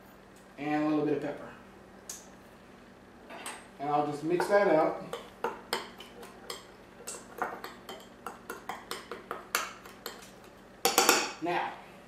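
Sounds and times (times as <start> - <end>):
utensil tapping glass bowl: 4.4 - 11.3.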